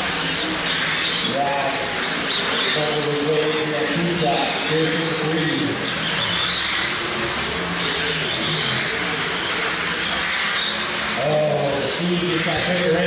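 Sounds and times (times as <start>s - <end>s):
rc car motors whining: 0.0s - 13.0s.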